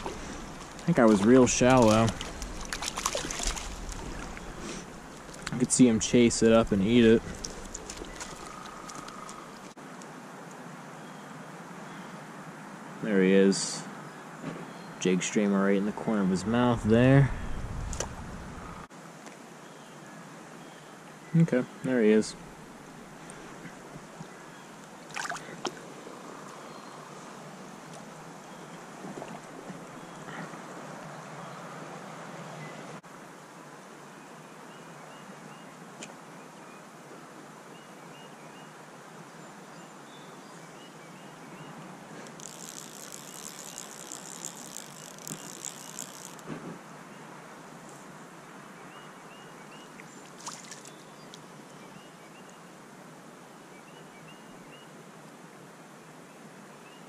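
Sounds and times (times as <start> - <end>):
creek water running over stones: 0.0 - 9.8, 24.9 - 26.5, 42.2 - 46.5, 50.0 - 51.6
wind on microphone: 6.2 - 8.2, 16.4 - 18.9.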